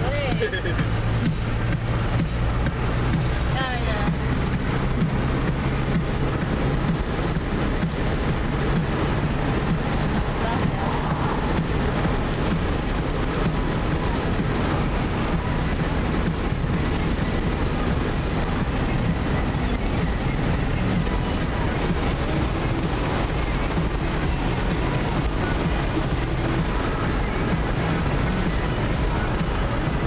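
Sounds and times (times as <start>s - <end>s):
road and wind noise in car: 0.0s - 30.0s.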